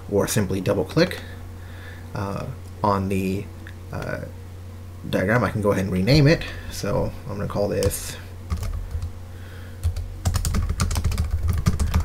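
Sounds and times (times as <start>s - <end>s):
computer keyboard typing: 8.5s - 9.1s, 9.8s - 12.0s.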